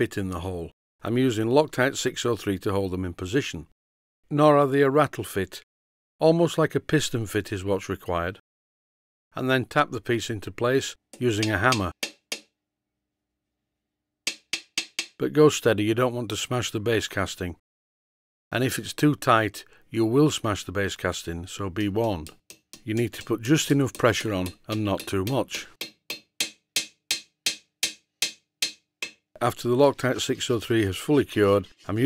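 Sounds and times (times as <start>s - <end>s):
small hammer tapping metal: 11.2s - 12.5s, 14.3s - 15.2s, 22.0s - 29.4s.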